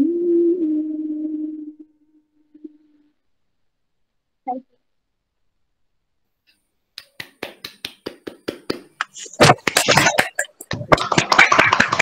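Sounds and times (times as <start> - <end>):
people clapping: 7.0 - 12.0.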